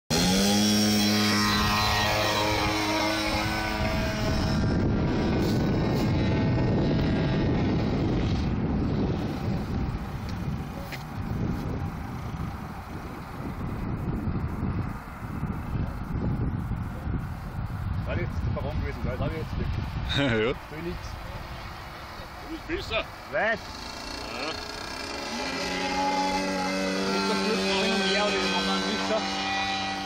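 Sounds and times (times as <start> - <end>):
model airplane engine at full throttle: 0.1 - 14.1, 22.9 - 30.0
steady rushing drone: 0.1 - 30.0.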